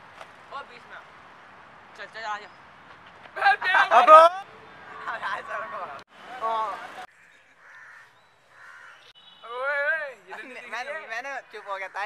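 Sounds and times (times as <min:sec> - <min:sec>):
faint harsh caw-like bird calls: 0:07.1 - 0:09.5.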